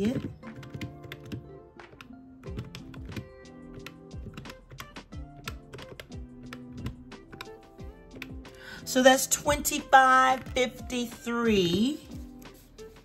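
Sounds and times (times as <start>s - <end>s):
calculator keys clicking: 0.0s - 8.4s
soft background music: 0.0s - 13.0s.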